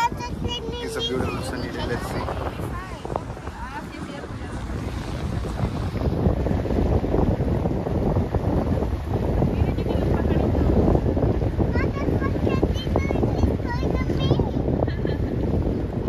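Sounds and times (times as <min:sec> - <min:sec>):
rushing water: 0:00.0 - 0:14.9
boat engine rumble: 0:00.0 - 0:16.0
wind buffeting microphone: 0:00.0 - 0:16.0.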